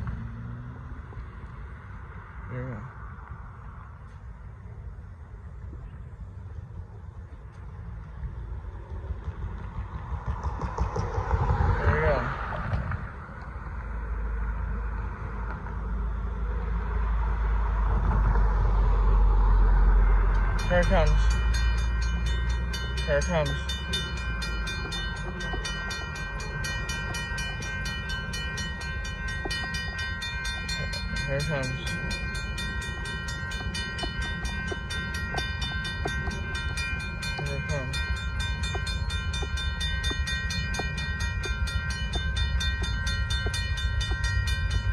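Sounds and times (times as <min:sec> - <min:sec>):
car driving past: 0:00.0 - 0:03.9, 0:09.4 - 0:23.0
low rumble: 0:00.0 - 0:44.9
railroad crossing bell ringing: 0:19.8 - 0:44.9.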